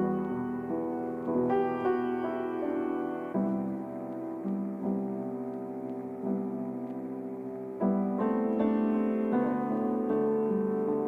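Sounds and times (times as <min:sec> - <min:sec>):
slow soft piano music: 0:00.0 - 0:11.0.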